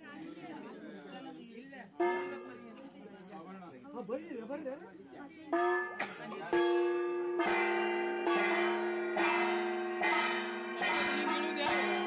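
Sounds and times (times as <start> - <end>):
bell ringing: 5.6 - 12.0.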